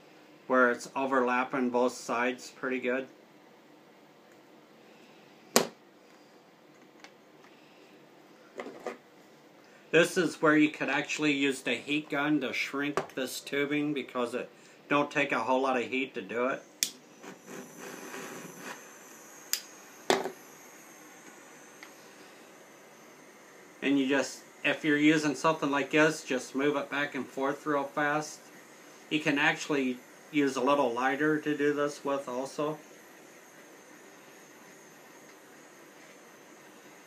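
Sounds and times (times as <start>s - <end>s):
faint room hiss: 0.0s - 37.0s.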